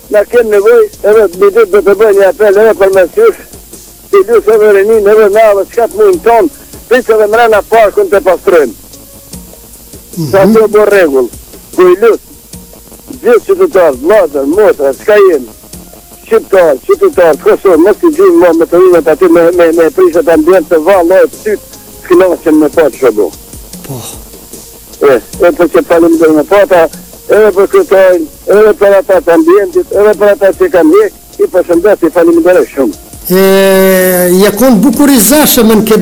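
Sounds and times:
distorted person's voice: 0.0 - 3.5, 4.1 - 8.8, 10.1 - 12.3, 13.0 - 15.6, 16.2 - 24.2, 25.0 - 36.0
hiss: 23.3 - 25.4.

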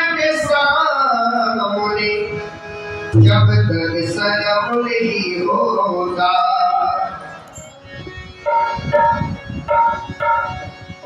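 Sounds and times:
harmonium chords: 0.0 - 11.0
person singing: 3.1 - 7.0.

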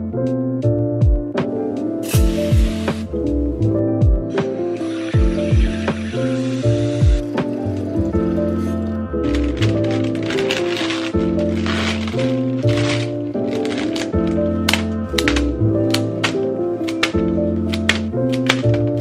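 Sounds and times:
instrumental background music: 0.0 - 19.0
kitchen faucet running: 4.8 - 7.3
plastic wrapping crinkling: 6.1 - 19.0.

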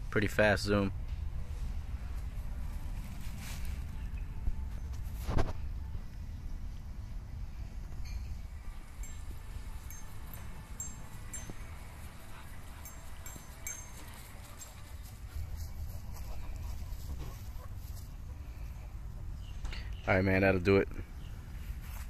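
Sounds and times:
steady low rumble: 0.0 - 22.0.

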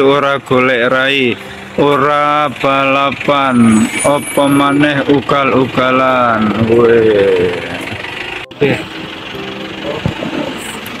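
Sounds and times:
man's voice: 0.0 - 7.9
minibus engine idling: 0.0 - 11.0.

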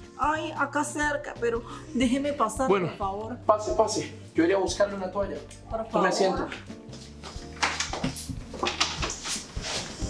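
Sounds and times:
flip-flop footsteps on tile: 6.4 - 10.0.

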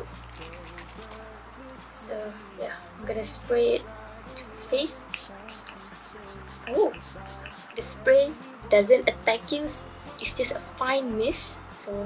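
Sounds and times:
liquid sloshing in a spray bottle: 0.0 - 1.3
soft background music: 0.0 - 12.0.

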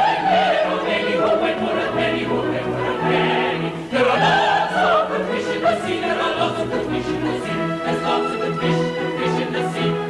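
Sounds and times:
chorus singing: 0.0 - 10.0
theatre orchestra: 0.0 - 10.0.

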